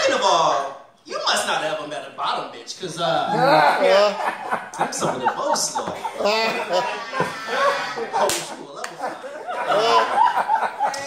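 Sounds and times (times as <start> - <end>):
audience laughter: 3.4 - 11.0.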